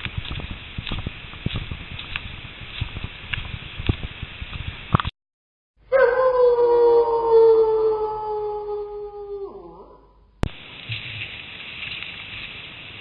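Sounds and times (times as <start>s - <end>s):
long downward-sliding howl: 5.9s - 10.2s.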